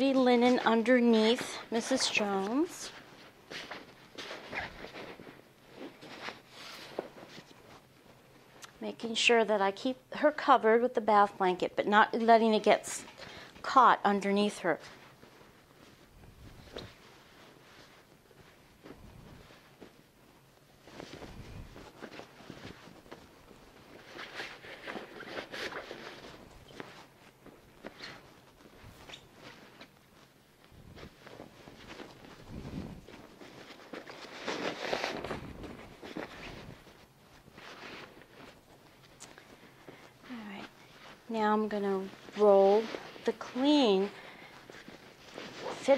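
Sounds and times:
bed sheets rustling and crumpling: 0.0s - 8.6s, 14.4s - 45.9s.

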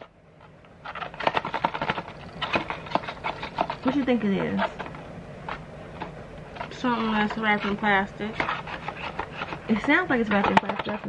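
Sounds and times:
plastic crinkling: 0.0s - 11.0s
cardboard box being shaken: 0.8s - 4.9s, 6.5s - 11.0s
small knocks: 8.4s - 11.0s.

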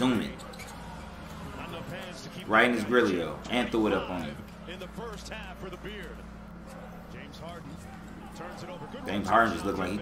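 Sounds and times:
steady low hum: 0.0s - 10.0s
people talking: 1.6s - 6.2s, 7.0s - 10.0s
commentator talking: 7.1s - 10.0s.

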